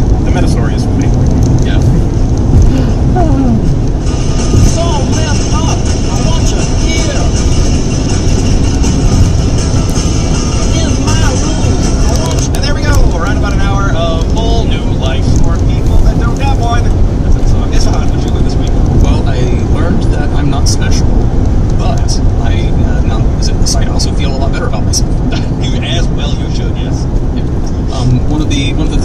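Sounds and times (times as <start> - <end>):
people talking: 0.0 - 2.0, 2.6 - 3.7, 4.5 - 7.6, 10.4 - 29.0
car road and engine noise: 0.0 - 29.0.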